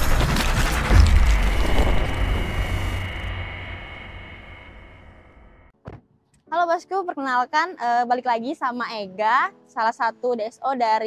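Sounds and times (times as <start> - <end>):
deep impact hit: 0.0 - 5.7
low rumble: 0.0 - 5.7
faint high ringing tone: 1.5 - 5.7.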